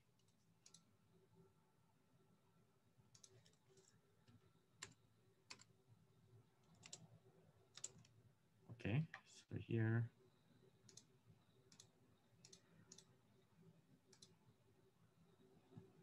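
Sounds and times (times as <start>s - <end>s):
computer keyboard and mouse clicks: 0.2s - 0.9s, 3.1s - 5.7s, 6.6s - 7.0s, 7.7s - 8.2s, 10.9s - 11.1s, 11.7s - 13.1s, 14.1s - 14.4s.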